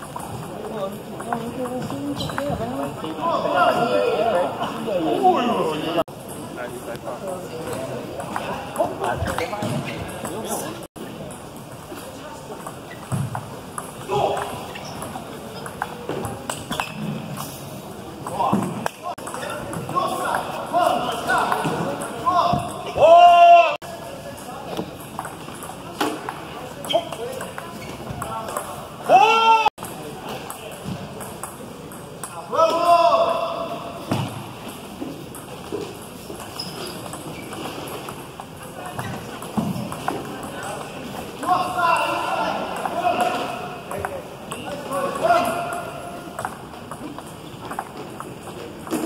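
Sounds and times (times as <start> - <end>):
table tennis ball bouncing: 0.0 - 3.1, 12.5 - 17.0, 18.2 - 20.6, 21.2 - 23.0, 24.8 - 28.8, 29.8 - 32.4, 34.1 - 40.9, 42.6 - 49.0
voices in echoing hall: 0.0 - 49.0.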